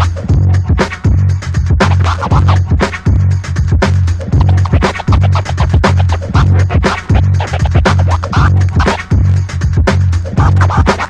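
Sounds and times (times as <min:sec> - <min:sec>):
backing track with deep bass: 0:00.0 - 0:11.0
turntable scratching: 0:00.0 - 0:11.0.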